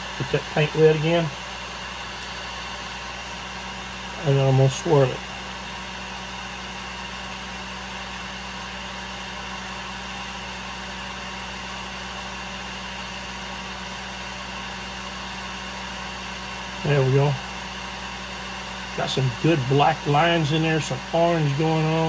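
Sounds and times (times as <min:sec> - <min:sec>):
heat gun blowing: 0:00.0 - 0:22.0.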